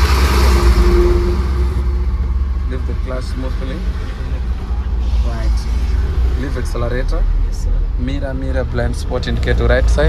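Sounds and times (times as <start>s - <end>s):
road noise: 0.0s - 10.0s
truck engine accelerating: 0.0s - 10.0s.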